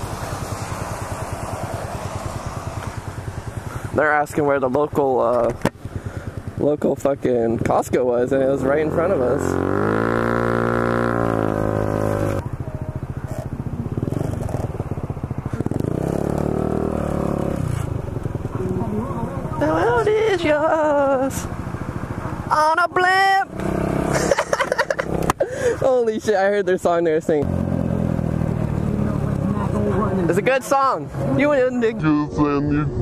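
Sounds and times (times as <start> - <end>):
scooter engine running: 0.0 - 7.7, 8.6 - 22.7
voices: 6.5 - 14.7, 17.1 - 27.4, 28.5 - 33.0.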